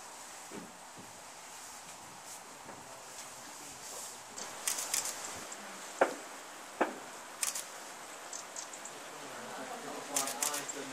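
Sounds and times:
sharp clicks: 4.4 - 5.2, 7.4 - 7.7, 10.2 - 10.7.

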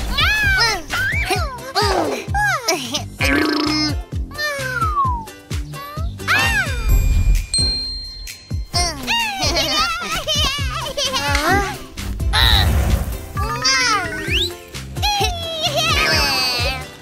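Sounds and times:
background music: 0.0 - 17.0
cartoon characters vocalizing: 3.2 - 4.8
high twinkling effect: 6.7 - 9.9.

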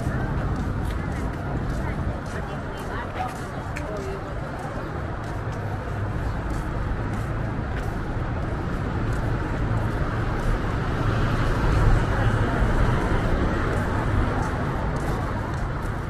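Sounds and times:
street traffic passing: 0.0 - 16.0.

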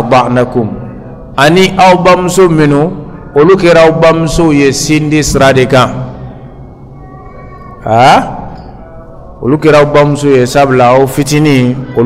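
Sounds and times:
man speaking: 0.0 - 6.2, 7.8 - 8.5, 9.4 - 12.0.

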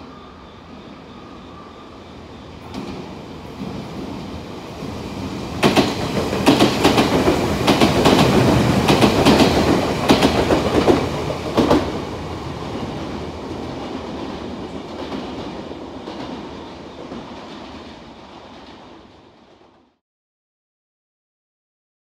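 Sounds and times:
train rumble: 0.0 - 19.9
train wheels clacking over rail joints: 5.6 - 12.1.

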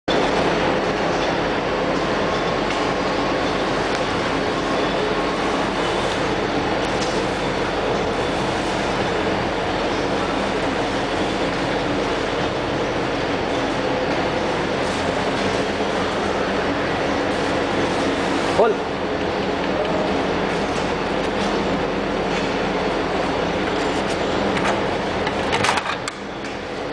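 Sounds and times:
workshop machinery running: 0.1 - 26.9.

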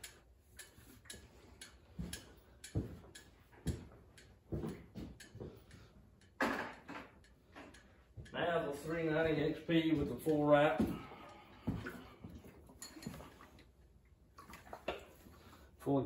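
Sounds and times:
knocks and clicks of handling: 0.0 - 8.4.

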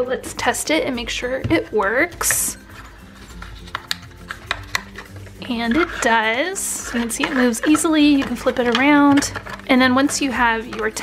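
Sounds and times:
soft background music: 0.0 - 11.0
card sliding clicks and taps: 3.2 - 5.3.

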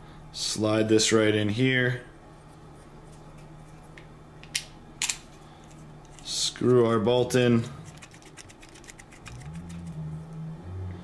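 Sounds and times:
low steady hum: 0.0 - 11.0
thumbscrew clicks: 8.0 - 10.0.

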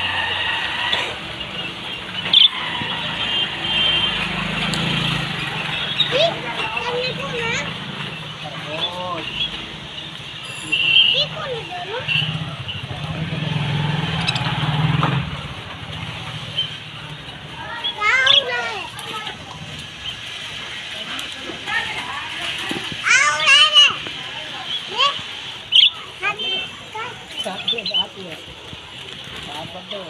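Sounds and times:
loud bird chirp: 0.0 - 4.0, 25.7 - 26.7
small birds chattering: 0.0 - 14.6, 15.9 - 21.0, 21.8 - 30.0.

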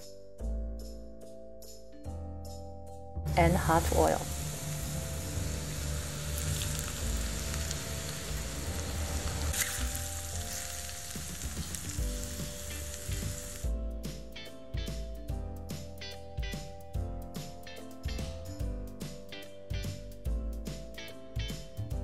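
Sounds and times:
hot oil sizzling: 3.7 - 13.7.

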